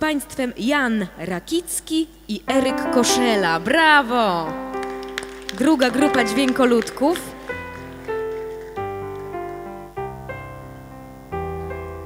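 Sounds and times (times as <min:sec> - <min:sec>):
piano chords: 0:02.5 - 0:12.0.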